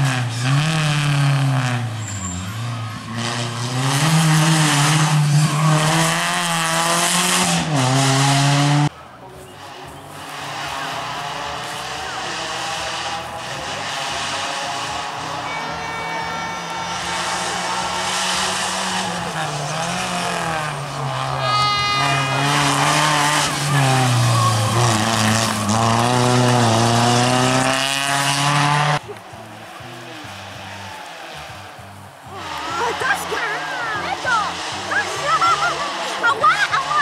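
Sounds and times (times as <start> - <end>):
rally car engine revving: 0.0 - 37.0.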